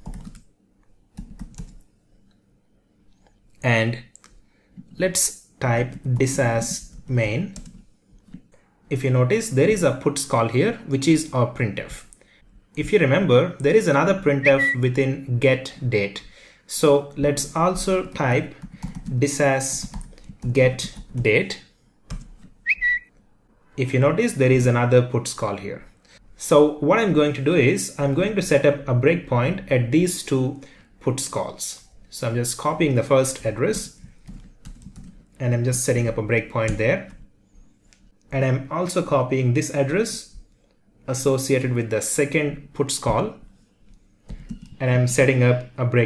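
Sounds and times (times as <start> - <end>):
high whistle-like tone: 14.4 - 14.8, 22.6 - 23.1.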